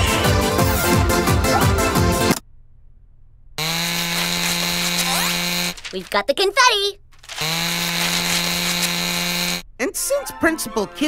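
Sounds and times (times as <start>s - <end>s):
buzzing drone: 7.4s - 9.6s.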